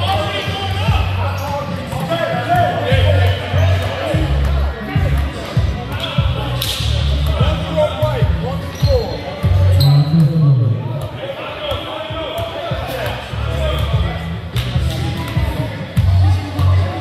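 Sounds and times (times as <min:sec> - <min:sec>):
sneakers squeaking on court floor: 0:00.0 - 0:07.6, 0:08.2 - 0:14.0
echoing voices: 0:00.0 - 0:17.0.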